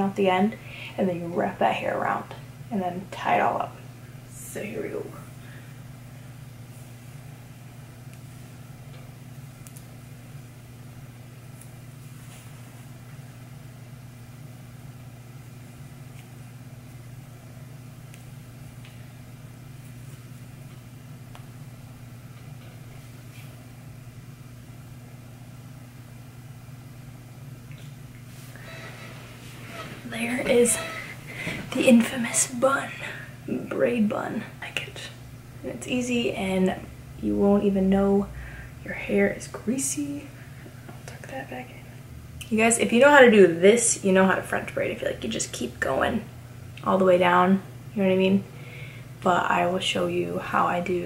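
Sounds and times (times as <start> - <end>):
low room hum: 0.0 - 51.0
clicks and rustles of hair tying: 8.0 - 10.0.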